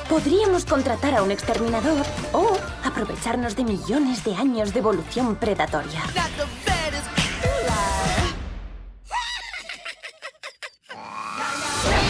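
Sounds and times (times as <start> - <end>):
cartoon mouse giggling: 9.2 - 11.1.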